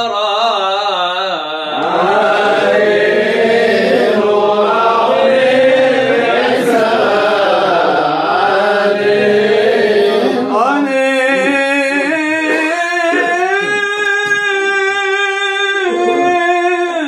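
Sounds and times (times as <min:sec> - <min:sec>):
men chanting a prayer: 0:00.0 - 0:17.0.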